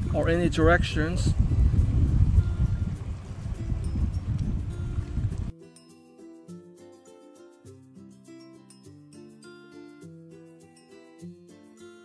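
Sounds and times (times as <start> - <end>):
wind buffeting microphone: 0.0 - 5.5.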